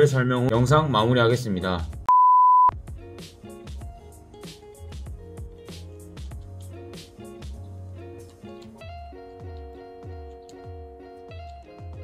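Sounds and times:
electronic beep: 0:02.1 - 0:02.7
background music: 0:02.7 - 0:12.0.

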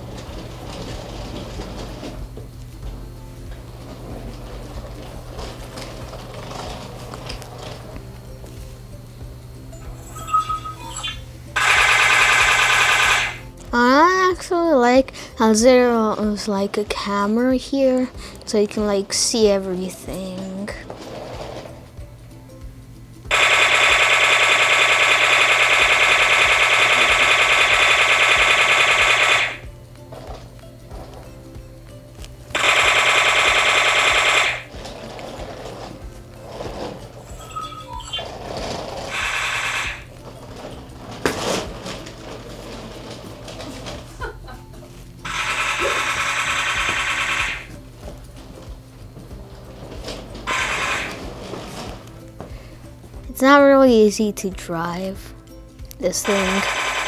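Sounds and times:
electric drive motors buzzing: 0:00.0 - 0:13.8, 0:20.0 - 0:31.6, 0:32.5 - 0:44.1, 0:45.1 - 0:52.3.

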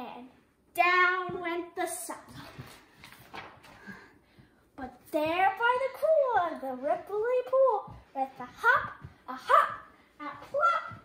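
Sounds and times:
soft rustling: 0:00.2 - 0:11.0.

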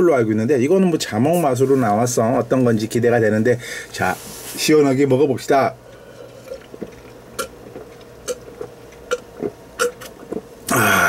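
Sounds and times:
person gulping a drink: 0:06.0 - 0:11.0.

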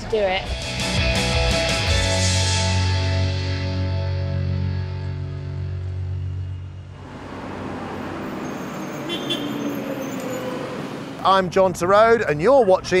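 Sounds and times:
background rock music: 0:00.0 - 0:07.0
city road traffic: 0:03.5 - 0:13.0.

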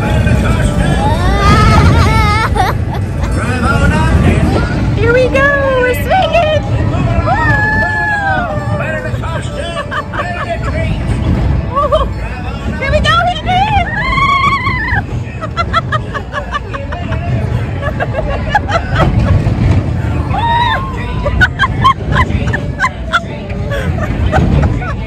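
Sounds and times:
crowd chatter: 0:00.0 - 0:25.0
music: 0:00.0 - 0:25.0
steady low rumble: 0:00.0 - 0:25.0
riders laughing and squealing: 0:00.5 - 0:04.4, 0:07.1 - 0:12.4, 0:13.6 - 0:25.0.

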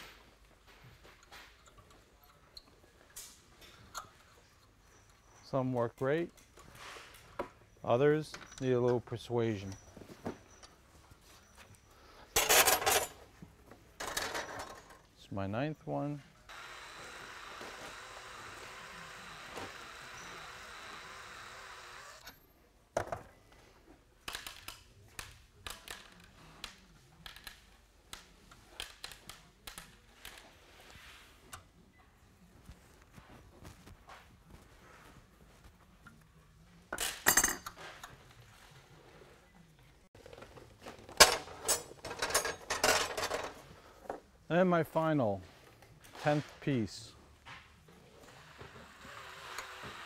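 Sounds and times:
cordless drill spinning on metal: 0:16.5 - 0:22.3.

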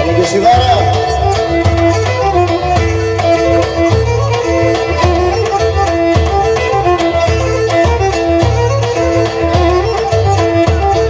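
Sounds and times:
bass drum rhythm: 0:00.0 - 0:11.0
bowed lyra folk melody: 0:00.0 - 0:11.0
keyboard: 0:00.0 - 0:11.0.

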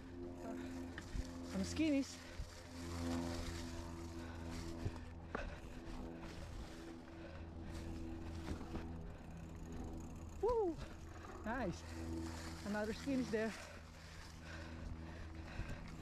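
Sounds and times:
bike tyre noise on dirt: 0:00.4 - 0:16.0.

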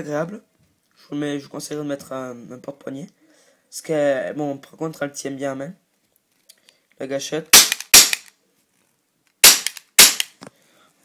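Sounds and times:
airsoft pistol shots: 0:07.6 - 0:08.3, 0:09.4 - 0:10.3.

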